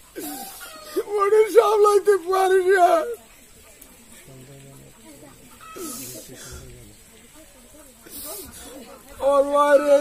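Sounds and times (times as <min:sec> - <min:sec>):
faint indistinct voices: 0:00.0 - 0:10.0
short breathy hiss: 0:05.8 - 0:06.7, 0:08.0 - 0:08.9.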